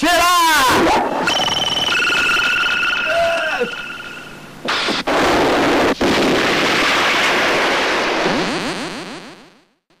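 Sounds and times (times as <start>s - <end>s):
explosion blast: 4.6s - 8.8s.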